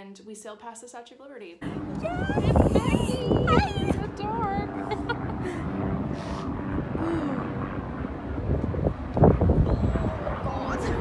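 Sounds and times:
people talking: 0.0 - 5.6, 9.7 - 11.0
wind rumble on microphone: 1.6 - 11.0.

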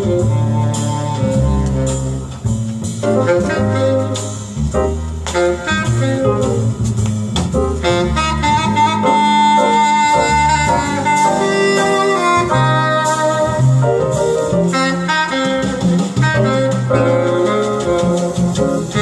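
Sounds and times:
double bass: 0.0 - 19.0
jazz rhythm section: 0.0 - 19.0
saxophone lead: 0.0 - 19.0.

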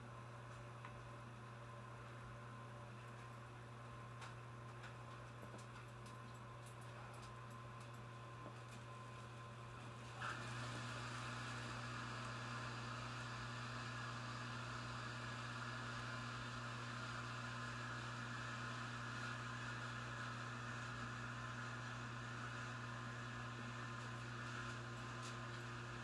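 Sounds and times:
fan humming: 0.0 - 26.0.

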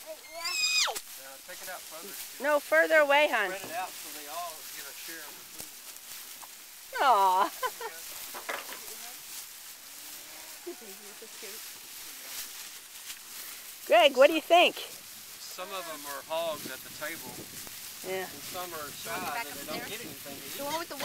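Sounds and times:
cattle chewing dry hay: 0.1 - 21.0.

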